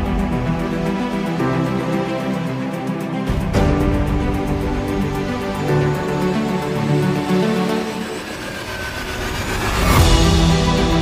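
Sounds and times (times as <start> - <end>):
background music: 0.0 - 11.0
noise sweep transition: 7.4 - 11.0.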